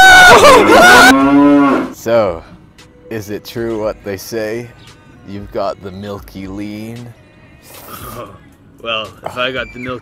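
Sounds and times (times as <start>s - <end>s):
cow mooing: 0.4s - 2.0s
voices: 1.9s - 10.0s.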